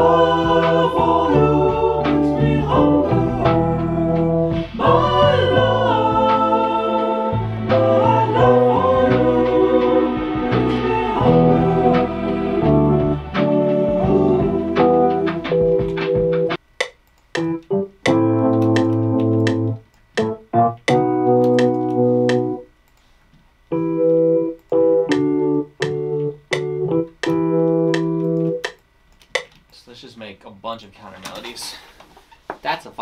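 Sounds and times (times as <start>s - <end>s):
deep bass: 0.0s - 6.6s, 7.3s - 16.6s
keyboard chords: 0.0s - 22.8s, 23.7s - 28.8s.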